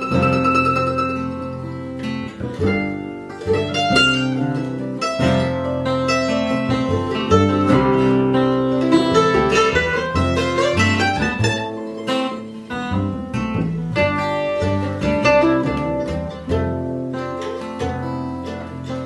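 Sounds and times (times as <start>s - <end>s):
acoustic guitar strumming: 0.0s - 19.0s
double bass plucking low notes: 0.0s - 19.0s
mandolin picking quick notes: 0.0s - 19.0s.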